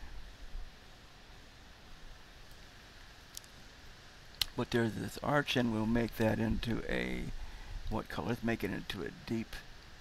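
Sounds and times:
faint hiss: 0:00.0 - 0:10.0
faint clicks: 0:02.5 - 0:03.6, 0:04.3 - 0:04.6.

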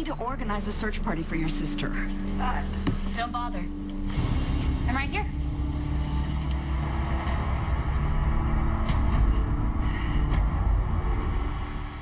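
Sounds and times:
low dramatic underscore music: 0:00.0 - 0:12.0.

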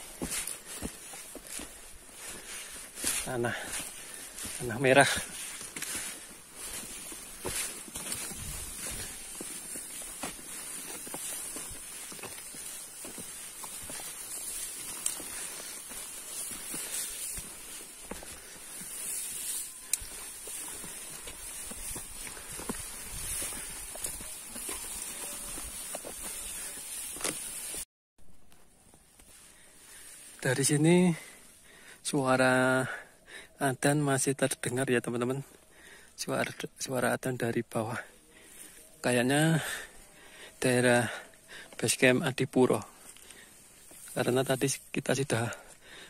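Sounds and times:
footsteps on dirt trail: 0:00.0 - 0:27.9, 0:28.5 - 0:33.2, 0:37.2 - 0:46.0.

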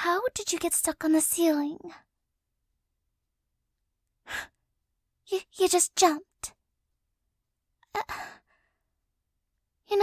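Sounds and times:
woman breathing: 0:04.2 - 0:04.6, 0:08.0 - 0:09.0.

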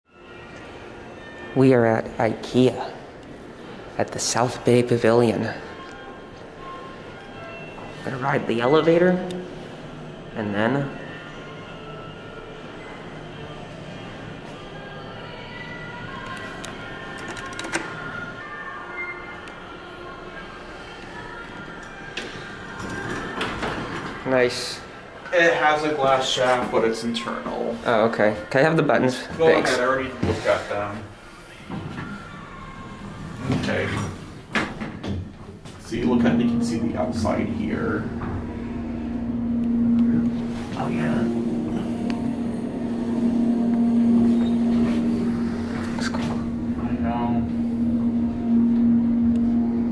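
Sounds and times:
background music: 0:00.1 - 0:33.5, 0:34.2 - 0:49.9
elevator hum: 0:00.2 - 0:24.3, 0:31.1 - 0:49.9
elevator doors sliding open: 0:21.4 - 0:24.3, 0:31.4 - 0:49.9.

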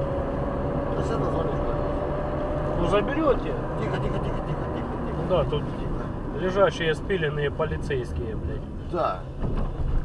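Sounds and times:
road and engine rumble: 0:00.0 - 0:10.0.

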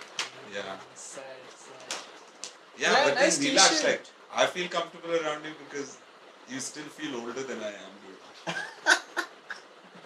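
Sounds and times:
laughter: 0:08.4 - 0:09.6.

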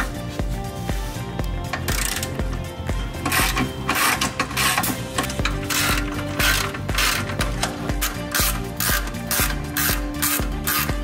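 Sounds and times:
background music with beat: 0:00.0 - 0:11.0
ratchet wrench clicking: 0:01.7 - 0:02.6, 0:03.2 - 0:11.0.

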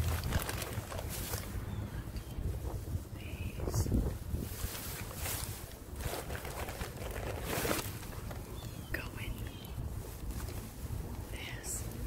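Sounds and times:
plastic bags rustling: 0:00.0 - 0:01.8, 0:04.3 - 0:09.0
low background rumble: 0:00.0 - 0:12.0.

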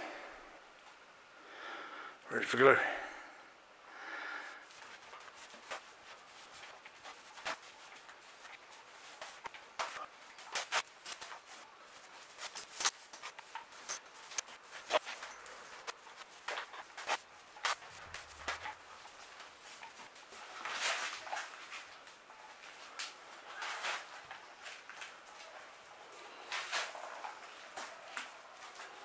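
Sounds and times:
glue spreading scrapes and clicks: 0:12.2 - 0:15.2.

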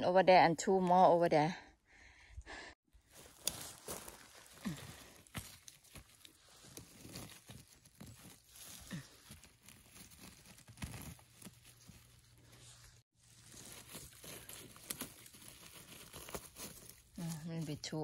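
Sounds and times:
rustling of grass and pine litter: 0:02.9 - 0:18.0.

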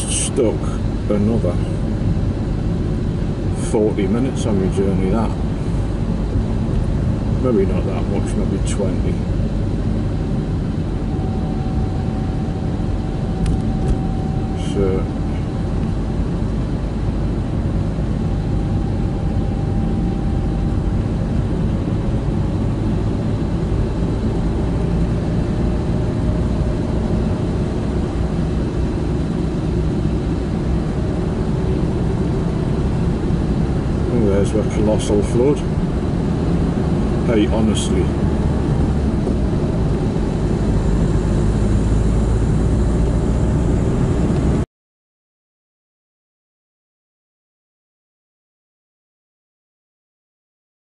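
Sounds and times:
faint steady tones: 0:00.0 - 0:42.2
tyre and engine rumble in car: 0:00.0 - 0:44.6.

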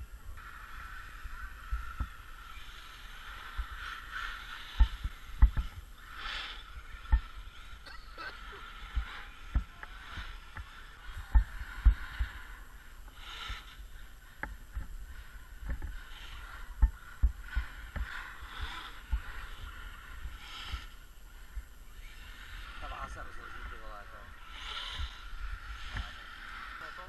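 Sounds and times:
small electric motors whining: 0:00.0 - 0:27.0.

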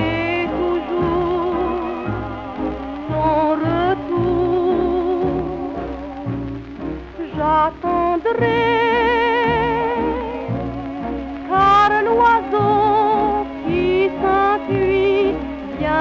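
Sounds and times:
old popular song recording: 0:00.0 - 0:16.0.

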